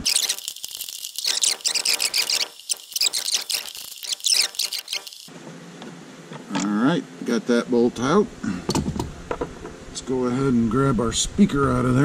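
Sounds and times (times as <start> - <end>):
ratchet wrench clicking: 0.0 - 5.3.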